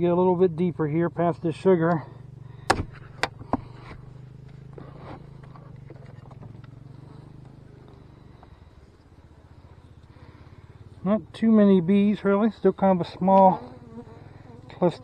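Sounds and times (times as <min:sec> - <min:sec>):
honey bees humming: 0:00.0 - 0:15.0.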